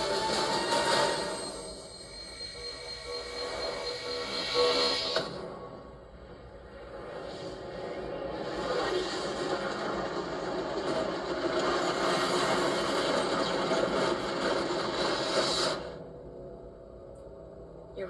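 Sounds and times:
fire and blast sound effect: 7.2 - 16.0.

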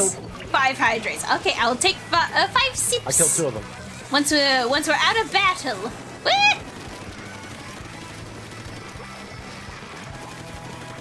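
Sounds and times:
video game music with beat: 6.1 - 11.0.

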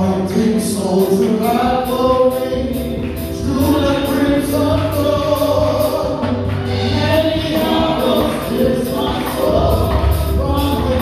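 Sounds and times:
electric keyboard: 0.0 - 11.0
group singing a gospel hymn: 0.0 - 11.0.

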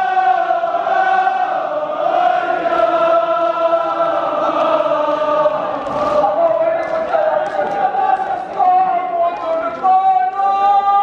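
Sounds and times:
men chanting: 0.0 - 11.0.

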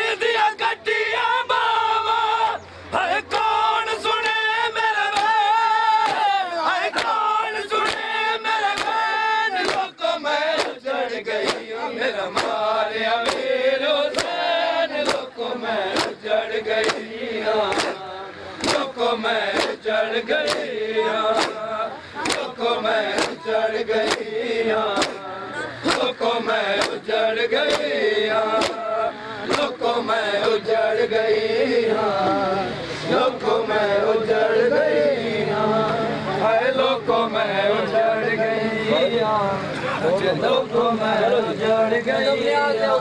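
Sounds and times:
crowd of men chanting: 0.0 - 43.0
hands slapping bare chests: 5.1 - 5.4, 6.0 - 6.3, 7.0 - 7.2, 7.8 - 9.0, 9.6 - 9.9, 10.5 - 10.8, 11.4 - 11.7, 12.3 - 12.6, 13.2 - 13.5, 15.0 - 15.3, 15.9 - 18.9, 19.5 - 19.8, 20.4 - 20.7, 21.3 - 21.6, 22.2 - 23.4, 24.0 - 24.3, 24.9 - 25.3, 25.9 - 27.0, 27.7 - 28.9, 29.5 - 29.8.

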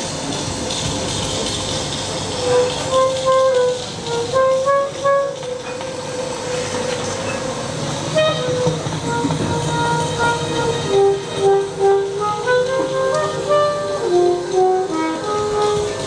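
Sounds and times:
saxophone improvising: 2.4 - 7.2, 8.1 - 16.0.

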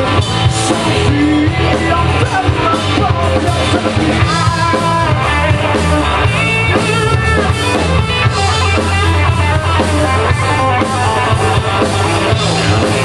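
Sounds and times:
drum kit: 0.0 - 13.0
electric guitars: 0.0 - 13.0.

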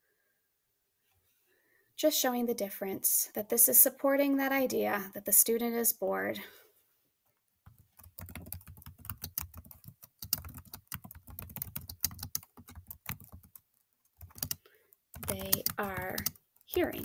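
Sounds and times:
typing on computer keyboard: 7.7 - 17.0.

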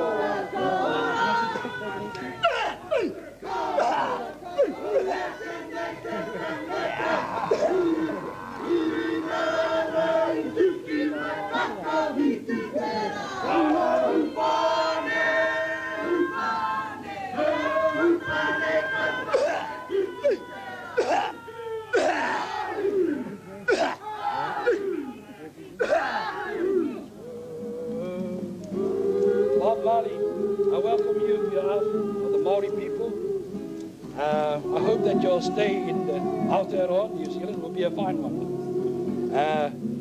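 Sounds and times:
men shouting cries: 0.0 - 39.8.

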